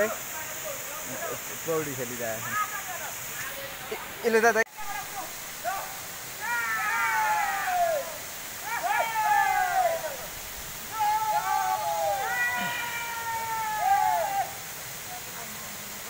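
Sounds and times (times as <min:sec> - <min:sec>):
waterfall rushing: 0:00.0 - 0:16.0
men's long high calls: 0:04.8 - 0:16.0.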